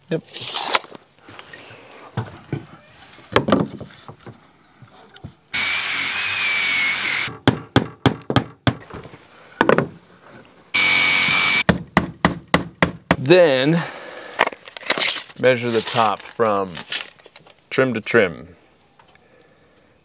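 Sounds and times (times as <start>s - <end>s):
cordless drill whining: 5.6s - 7.3s, 10.8s - 11.6s.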